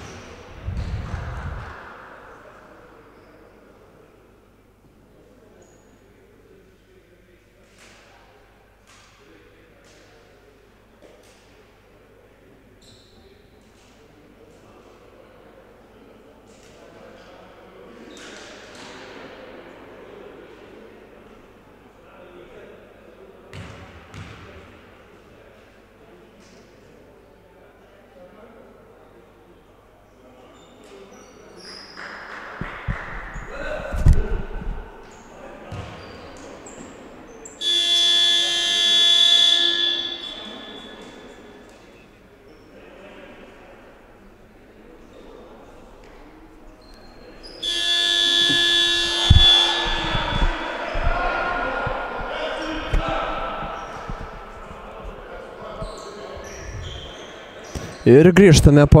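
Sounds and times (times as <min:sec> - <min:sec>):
game buzzer blaring: 0:37.6 - 0:40.4, 0:47.6 - 0:50.6.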